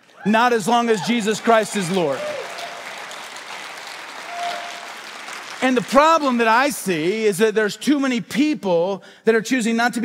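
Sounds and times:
congregation clapping: 0.0s - 7.2s.

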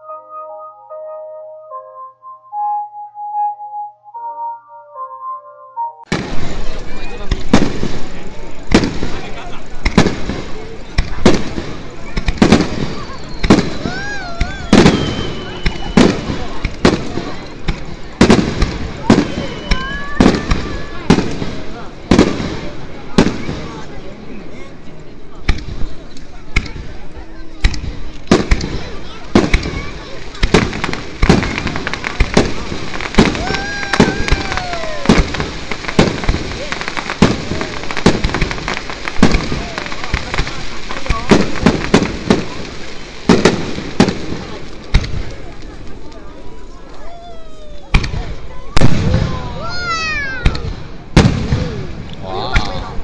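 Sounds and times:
high falling whistle: 0.0s - 6.1s
spectators' voices: 0.0s - 53.0s
firework bangs: 6.1s - 24.0s, 27.6s - 46.4s, 47.9s - 53.0s.

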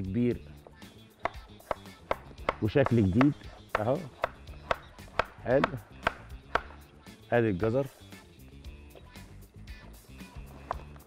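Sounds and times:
knife chopping carrot on wooden board: 1.2s - 6.8s.

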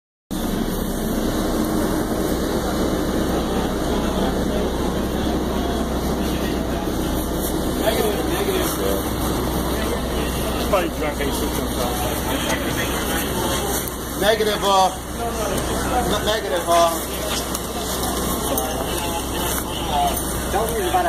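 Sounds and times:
people's voices: 0.4s - 21.0s
train running hum: 0.4s - 21.0s.

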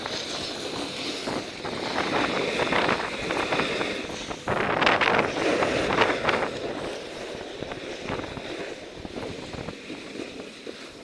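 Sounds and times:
snowboard scraping over snow: 0.0s - 11.0s
wind rushing over microphone: 0.0s - 11.0s.

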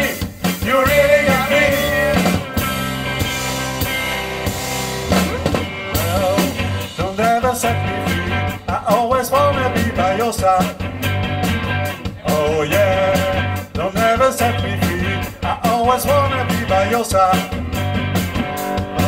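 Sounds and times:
bass line: 0.0s - 19.0s
drum beat: 0.0s - 19.0s
electric guitars: 0.0s - 19.0s.

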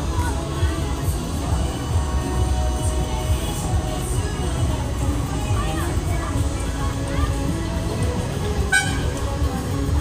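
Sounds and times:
fairground ride music with heavy beat: 0.0s - 10.0s
horn blast: 8.7s - 9.2s.

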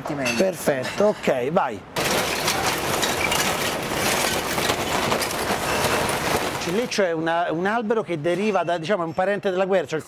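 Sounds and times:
charcoal lumps clattering: 2.0s - 7.2s.

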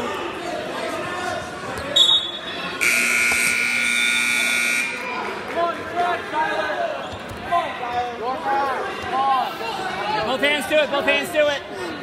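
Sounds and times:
scoreboard buzzer tone: 2.8s - 5.0s.

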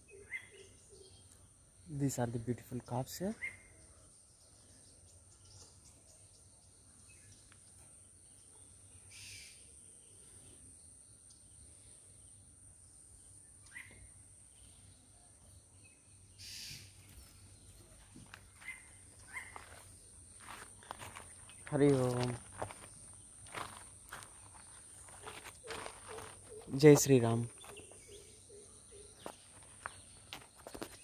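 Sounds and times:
faint bird chirps: 0.0s - 2.2s, 2.9s - 31.0s.

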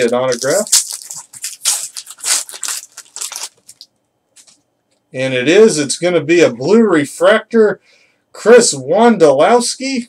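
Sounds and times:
foil wrapper tearing and crinkling: 0.0s - 4.6s.

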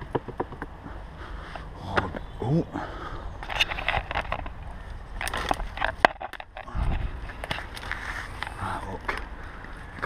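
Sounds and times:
scrapes and knocks on stone: 0.0s - 0.7s
rustling of leaves and twigs: 2.8s - 10.0s
camera handling rumble: 3.3s - 9.4s.

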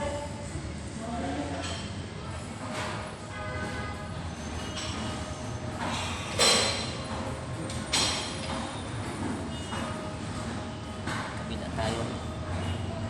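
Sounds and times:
gym equipment clanks ringing: 4.5s - 9.8s.

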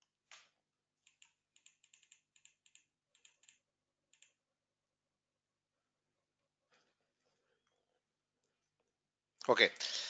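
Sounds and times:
computer keyboard clicking: 1.0s - 4.4s.

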